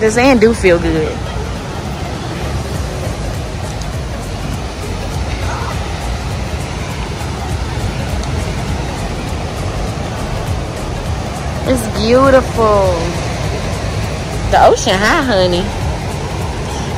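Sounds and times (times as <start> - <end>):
ocean surf rushing: 0.0 - 16.9
wind on microphone: 0.0 - 16.9.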